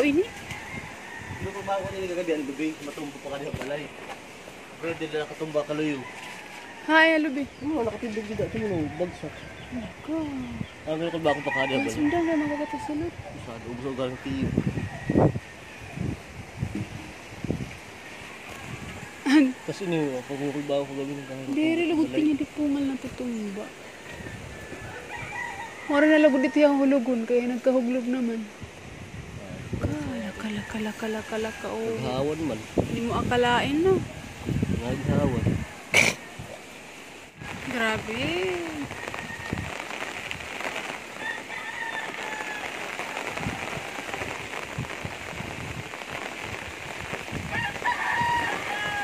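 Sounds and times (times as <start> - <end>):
rooster crowing faintly: 0.0 - 3.5, 4.8 - 7.2, 11.1 - 17.2, 23.7 - 27.0, 38.7 - 49.0
heavy rain and wind: 0.0 - 49.0
raindrops tapping: 37.3 - 49.0.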